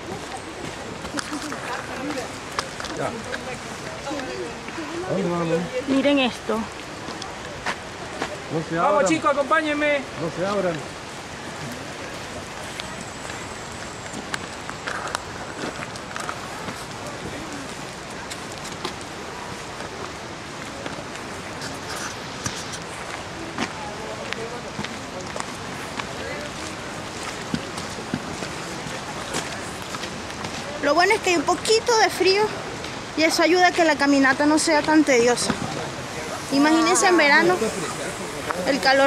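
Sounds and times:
falling water hissing: 0:00.0 - 0:39.0
footsteps on dirt trail: 0:11.5 - 0:31.5.

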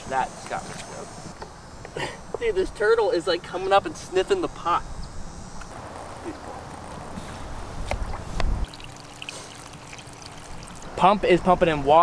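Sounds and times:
water pouring and trickling: 0:08.1 - 0:11.0.

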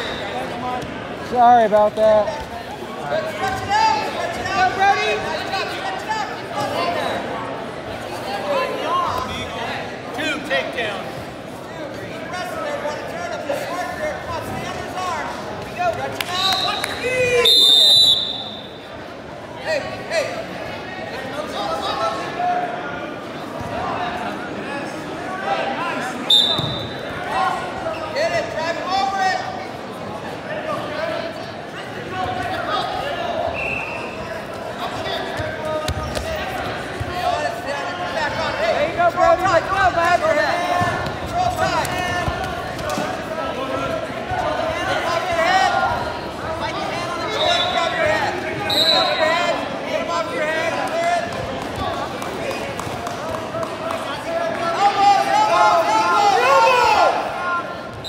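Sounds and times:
people talking and calling out: 0:00.0 - 0:58.0
shrill referee whistle: 0:16.4 - 0:18.8, 0:26.3 - 0:27.0, 0:33.5 - 0:34.2, 0:47.3 - 0:48.0, 0:48.6 - 0:49.3.

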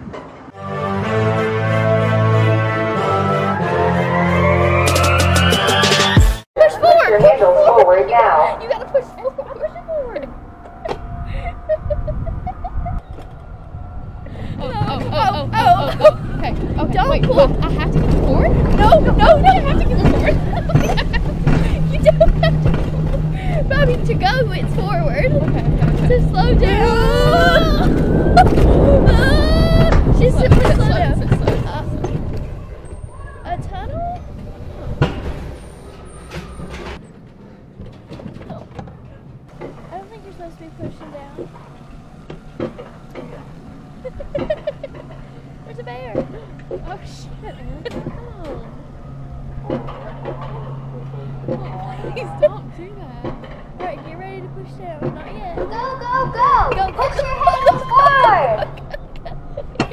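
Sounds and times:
murmured voices: 0:06.6 - 0:12.8, 0:14.2 - 0:34.4
steady low hum: 0:06.6 - 0:38.0, 0:39.0 - 0:59.9
coaster wheels rumbling on rail: 0:06.6 - 0:59.9
riders laughing and shrieking: 0:09.2 - 0:13.4, 0:14.1 - 0:32.0, 0:43.9 - 0:49.0, 0:49.8 - 0:53.0, 0:55.8 - 0:59.9.

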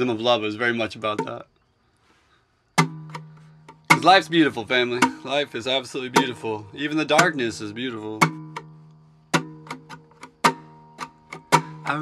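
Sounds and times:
acoustic guitar strum: 0:02.8 - 0:12.0.

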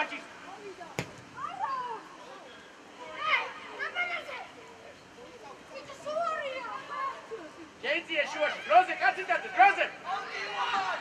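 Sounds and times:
faint field noise: 0:00.0 - 0:11.0
sharp knock: 0:01.0 - 0:01.3.

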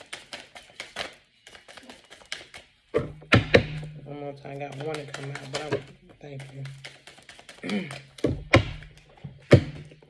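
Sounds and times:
cards knocked against tabletop: 0:04.6 - 0:10.0.

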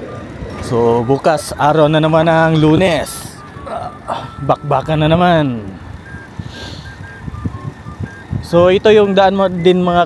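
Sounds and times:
thin beeping tones: 0:00.0 - 0:10.0
wind and road noise on microphone: 0:00.0 - 0:10.0.

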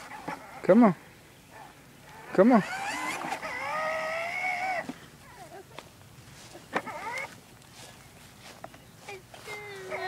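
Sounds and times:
child whining: 0:05.2 - 0:05.8, 0:09.1 - 0:10.0.

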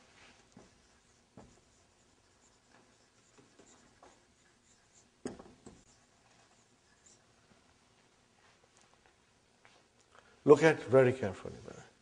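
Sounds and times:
marker writing on whiteboard: 0:00.0 - 0:07.6
marker tapping board: 0:05.2 - 0:05.9.

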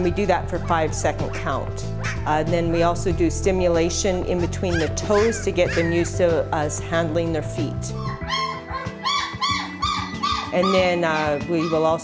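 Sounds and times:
background music: 0:00.0 - 0:12.0
puppies whimpering: 0:04.3 - 0:06.2, 0:07.9 - 0:12.0.

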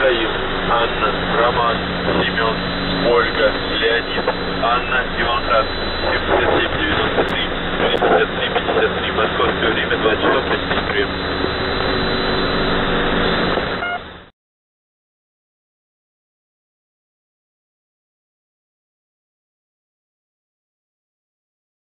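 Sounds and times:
garbled radio voice fragments: 0:00.0 - 0:11.8
radio static: 0:00.0 - 0:14.3.

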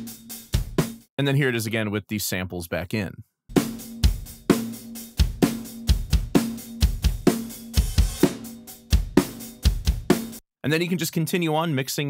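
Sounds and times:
drum kit beat: 0:00.0 - 0:01.1, 0:03.5 - 0:10.4.

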